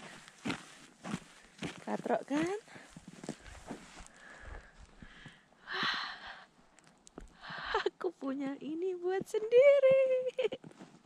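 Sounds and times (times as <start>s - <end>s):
person breathing close to microphone: 2.6s - 6.6s.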